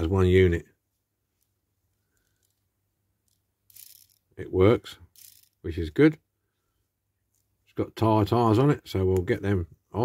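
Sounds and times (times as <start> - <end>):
toy car motor gears rasping: 3.7 - 4.2, 5.1 - 5.6.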